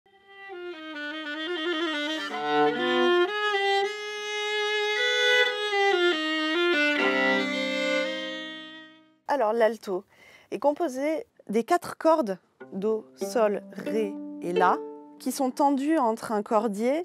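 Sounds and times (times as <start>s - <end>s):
solo bowed viola: 0.1s - 9.2s, 12.6s - 15.6s.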